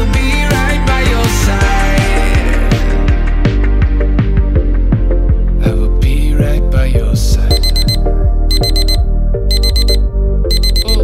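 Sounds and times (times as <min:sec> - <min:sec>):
song with drum beat and bass: 0:00.0 - 0:05.0, 0:06.4 - 0:11.0
digital alarm clock beeping: 0:07.5 - 0:11.0.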